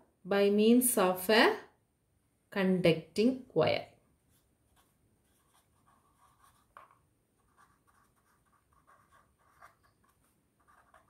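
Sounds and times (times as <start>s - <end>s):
pen scratching on paper: 4.3s - 11.0s.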